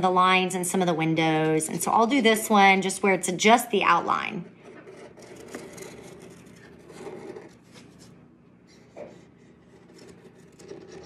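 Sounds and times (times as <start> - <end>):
pen tip scratching paper: 4.6 - 8.1, 9.1 - 11.0.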